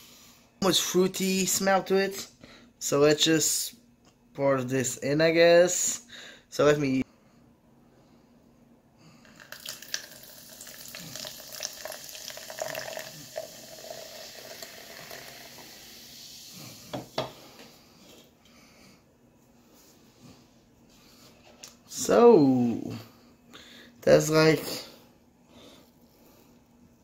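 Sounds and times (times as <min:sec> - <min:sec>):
drink pouring into plastic cup: 0:09.3 - 0:16.4.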